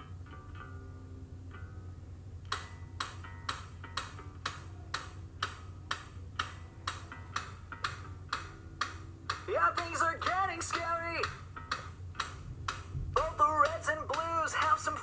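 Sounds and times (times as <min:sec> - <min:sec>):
clock-like ticking: 0:02.5 - 0:15.0.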